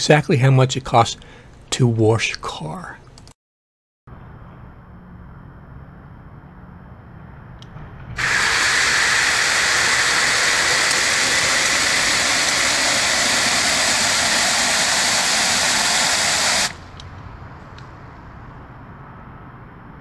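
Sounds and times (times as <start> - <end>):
hose nozzle spraying into metal bucket: 8.2 - 16.9.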